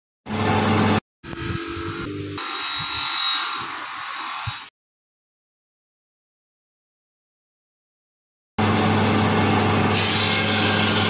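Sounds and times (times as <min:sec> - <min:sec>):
grinding machine hum: 0:00.3 - 0:02.5, 0:08.6 - 0:11.0
knife blade grinding on wheel: 0:09.9 - 0:11.0.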